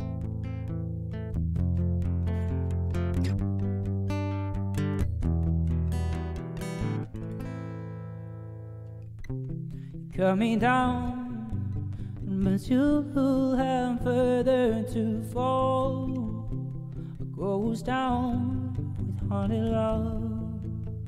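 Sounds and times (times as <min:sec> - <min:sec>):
acoustic guitar playing: 0:00.0 - 0:21.0.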